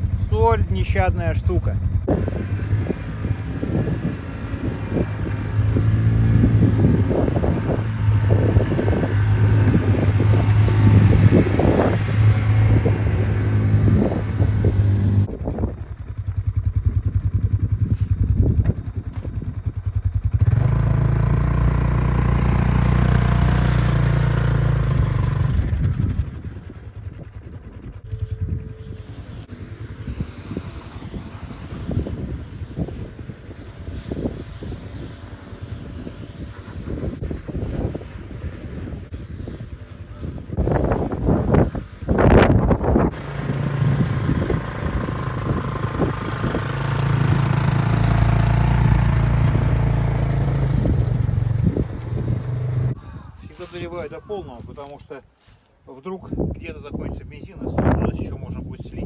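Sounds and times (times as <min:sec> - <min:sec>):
buggy engine idling: 0:00.0 - 0:31.1, 0:39.8 - 0:55.0
buggy engine revving away: 0:00.0 - 0:39.1, 0:40.4 - 0:53.0.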